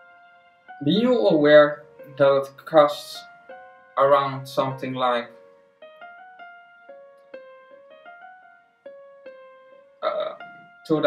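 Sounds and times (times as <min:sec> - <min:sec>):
piano single notes: 0:00.0 - 0:11.0
person speaking: 0:00.8 - 0:03.3, 0:03.9 - 0:05.4, 0:10.0 - 0:11.0.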